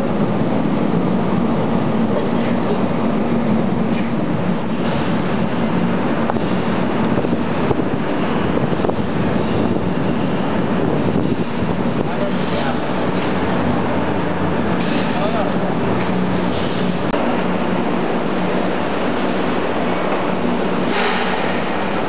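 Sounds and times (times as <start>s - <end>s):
passenger cart running noise: 0.0s - 22.0s.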